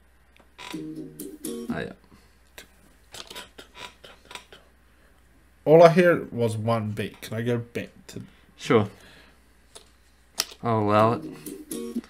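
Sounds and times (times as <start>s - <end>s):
clicks and rustles of phones: 3.1s - 4.6s, 9.7s - 10.7s.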